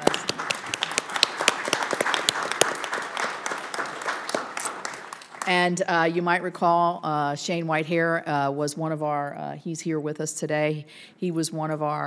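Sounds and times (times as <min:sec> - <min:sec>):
people clapping: 0:00.0 - 0:05.9.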